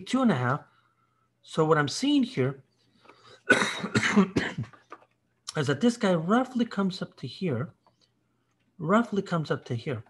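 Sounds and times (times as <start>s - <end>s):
man coughing: 3.4s - 5.0s.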